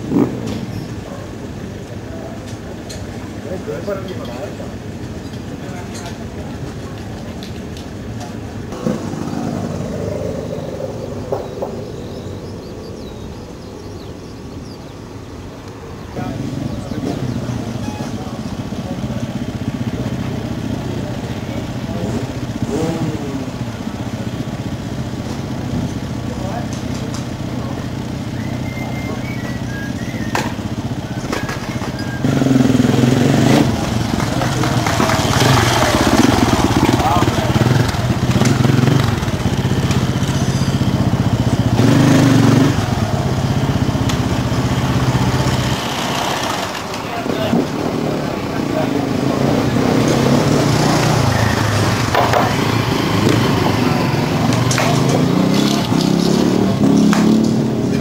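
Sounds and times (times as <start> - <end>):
people talking: 0.0 - 12.3, 15.7 - 58.0
motorcycle engine running: 0.0 - 14.8, 16.0 - 58.0.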